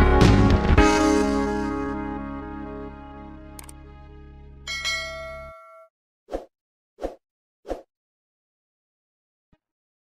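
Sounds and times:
backing music: 0:00.0 - 0:05.1
notification bell chime: 0:04.7 - 0:05.9.

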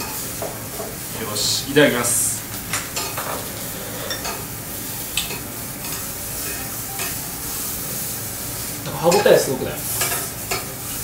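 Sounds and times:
meat sizzling on a grill: 0:00.0 - 0:11.0.

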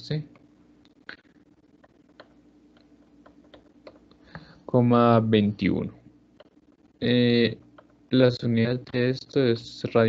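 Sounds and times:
man speaking: 0:04.7 - 0:06.0, 0:07.0 - 0:10.0.

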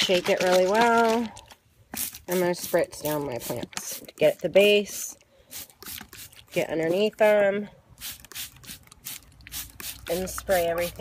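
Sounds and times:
spray bottle squirting: 0:01.9 - 0:07.4, 0:08.0 - 0:11.0.

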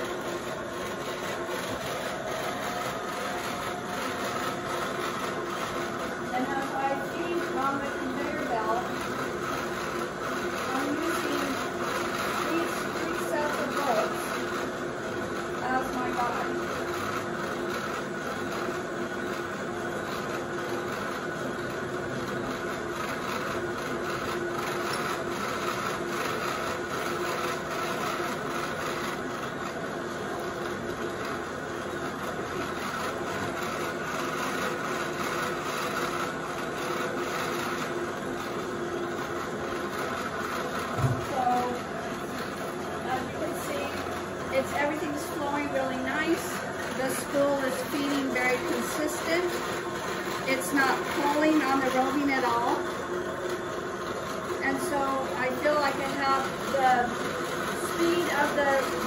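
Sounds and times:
fibre-processing machine humming: 0:00.0 - 0:59.0.

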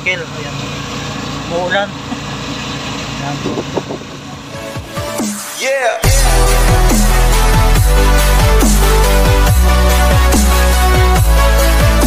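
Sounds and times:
road noise on wet street: 0:00.0 - 0:04.6.

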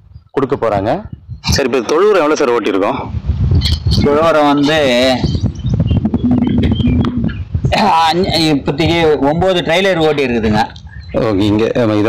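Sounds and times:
steady low rumble: 0:05.4 - 0:07.8
man's held hesitation sound: 0:06.0 - 0:07.4.

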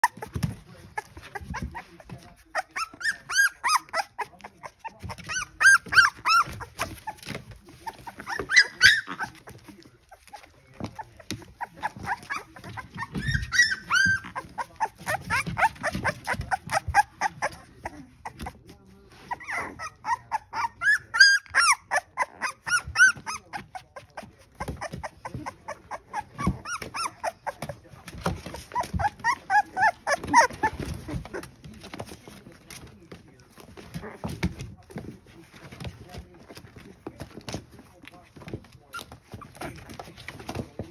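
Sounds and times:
puppies whining and squealing: 0:00.0 - 0:40.9.

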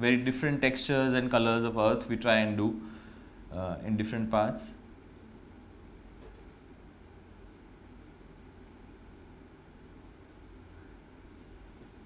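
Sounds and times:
low room hum with hiss: 0:00.0 - 0:12.0.

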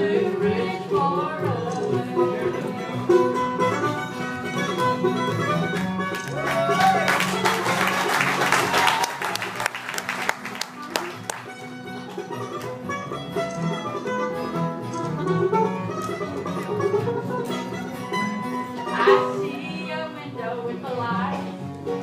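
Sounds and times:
acoustic guitars: 0:00.0 - 0:22.0
mandolin: 0:00.0 - 0:22.0
upright bass: 0:00.0 - 0:22.0.

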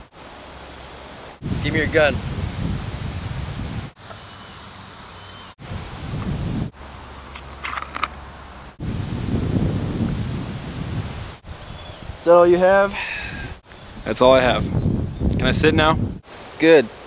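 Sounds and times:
wind rumbling on microphone: 0:01.4 - 0:04.3, 0:05.6 - 0:16.3.

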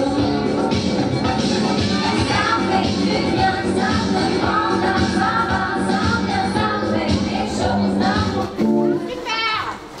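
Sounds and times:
dance music: 0:00.0 - 0:09.5.

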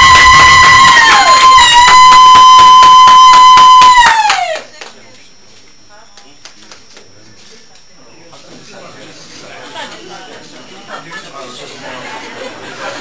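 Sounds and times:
high celebratory cry: 0:00.0 - 0:04.7
applause: 0:03.2 - 0:05.0.

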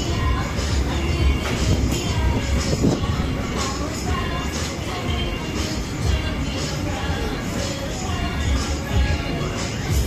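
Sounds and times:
loud bass-heavy music: 0:00.0 - 0:10.0.

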